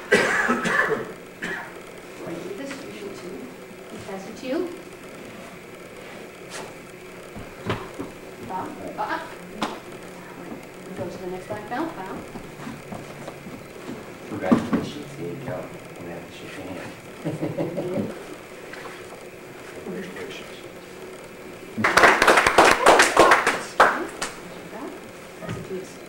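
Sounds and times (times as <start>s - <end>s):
person coughing: 0.0s - 1.8s.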